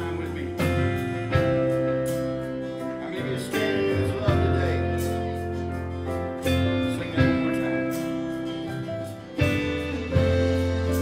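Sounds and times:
drums: 0:00.0 - 0:11.0
electric guitar: 0:00.0 - 0:11.0
steel guitar: 0:00.0 - 0:11.0
strummed acoustic guitar: 0:00.0 - 0:11.0.

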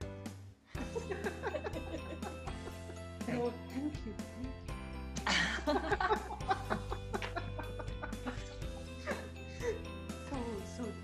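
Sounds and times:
background music: 0:00.0 - 0:11.0
woman laughing: 0:00.8 - 0:02.8, 0:05.2 - 0:09.8.

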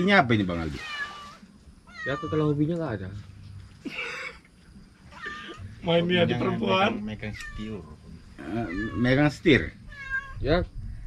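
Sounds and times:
high-pitched animal call: 0:00.8 - 0:02.6, 0:05.1 - 0:05.8, 0:06.6 - 0:10.4
man's voice: 0:05.9 - 0:09.7.

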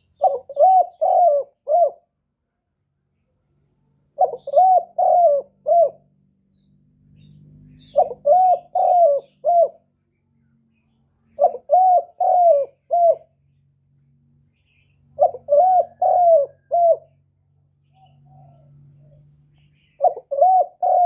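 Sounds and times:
dove cooing: 0:00.0 - 0:02.1, 0:04.2 - 0:06.1, 0:07.8 - 0:09.9, 0:11.3 - 0:13.4, 0:15.0 - 0:17.2, 0:17.9 - 0:19.2, 0:19.9 - 0:21.0.

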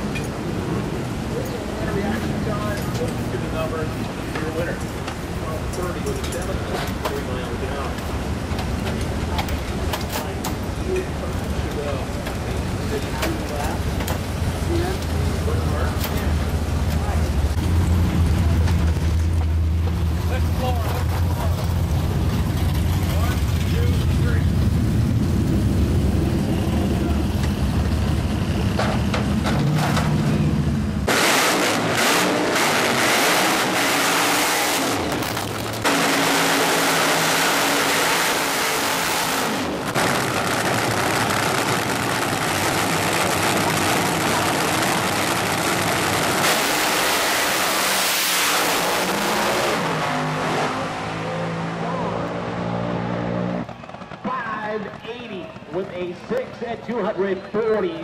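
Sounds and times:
drag racing car engine: 0:00.0 - 0:57.6.

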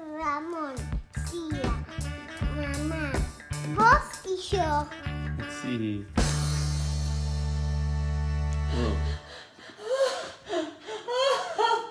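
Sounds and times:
held music chord: 0:01.6 - 0:03.9, 0:04.5 - 0:09.4.

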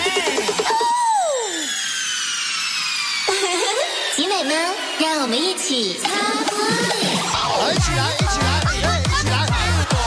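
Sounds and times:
electronic dance music: 0:00.0 - 0:10.0
voice: 0:03.3 - 0:06.3.

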